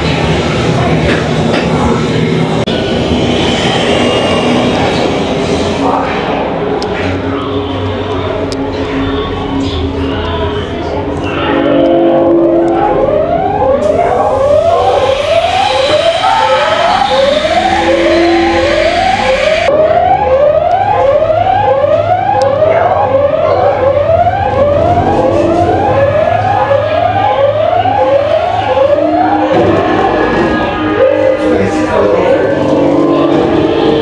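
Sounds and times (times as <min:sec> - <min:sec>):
whooping alarm siren: 0:11.2 - 0:34.0.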